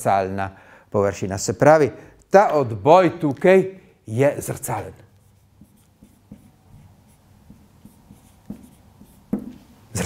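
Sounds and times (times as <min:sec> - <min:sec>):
marker pen writing on whiteboard: 0:04.3 - 0:09.8.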